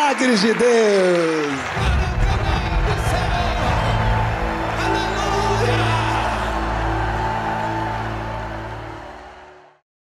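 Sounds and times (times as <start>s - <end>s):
background music with held notes: 1.8s - 9.8s.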